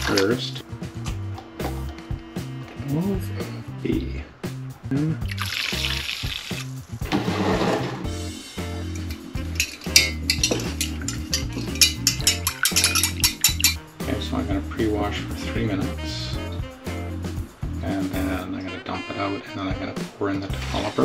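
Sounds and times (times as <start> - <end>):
background music with steady bass: 0.0 - 21.0
liquid squirting from syringe: 5.2 - 6.8
stirring rod clinking against glass: 9.0 - 13.8.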